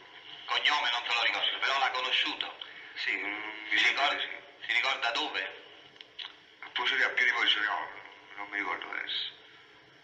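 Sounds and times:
speech in old recording: 0.0s - 10.0s.

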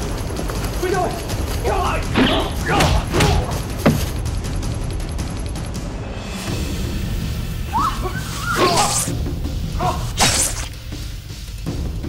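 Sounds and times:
comedy background music: 0.0s - 12.0s.

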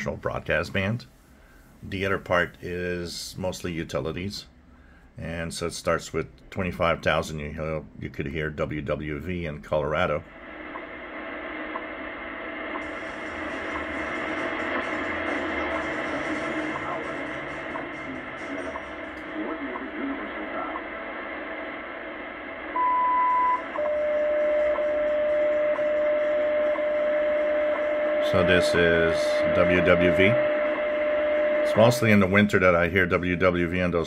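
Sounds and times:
radio static: 6.8s - 34.0s
steady lower tone: 9.2s - 34.0s
long beep: 22.7s - 33.4s.

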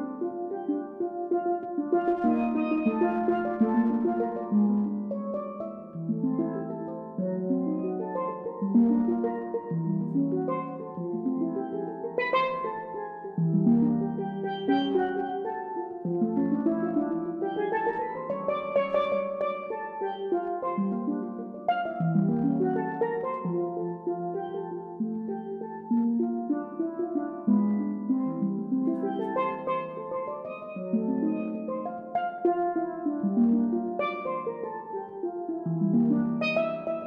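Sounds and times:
steel pans playing jazz: 0.2s - 7.0s, 7.6s - 25.0s, 28.8s - 37.0s.

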